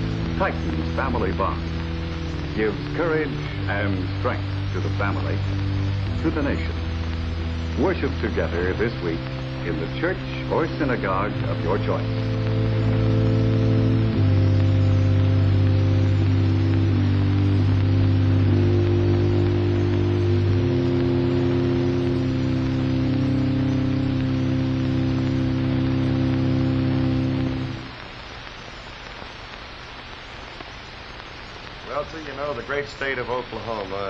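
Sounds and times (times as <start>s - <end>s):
slow held chords music: 0.0s - 28.0s
steady hiss: 0.0s - 34.0s.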